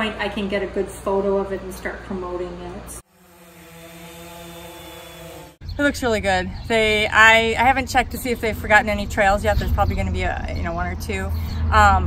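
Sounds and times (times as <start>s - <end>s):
drone propellers humming: 3.0s - 9.0s.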